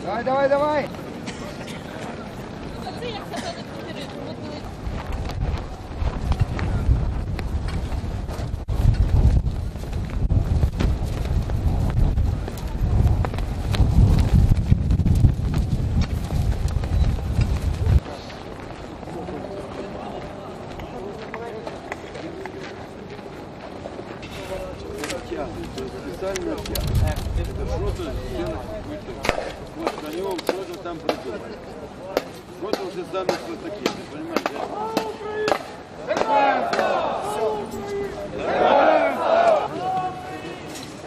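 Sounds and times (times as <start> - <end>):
heavy low rumble: 4.6 - 18.1.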